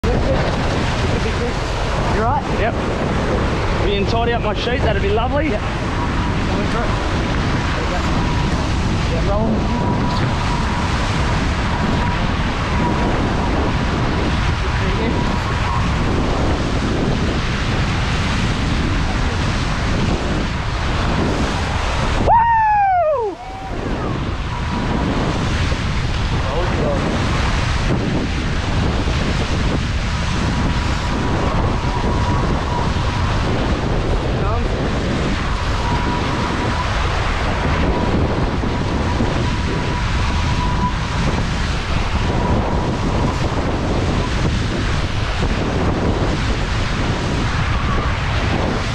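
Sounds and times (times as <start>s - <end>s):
water rushing along hulls: 0.0s - 48.9s
wind buffeting microphone: 0.0s - 48.9s.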